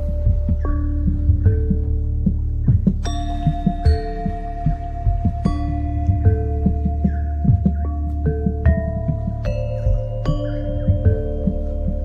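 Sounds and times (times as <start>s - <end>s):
low drum beat: 0.0s - 12.0s
temple bells ringing: 3.0s - 12.0s.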